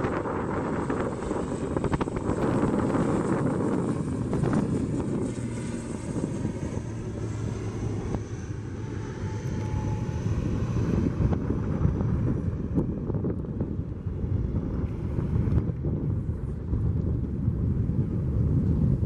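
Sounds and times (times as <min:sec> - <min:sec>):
propeller drone: 0:00.0 - 0:19.0
turbine whine: 0:00.0 - 0:19.0
wind on microphone: 0:00.0 - 0:19.0.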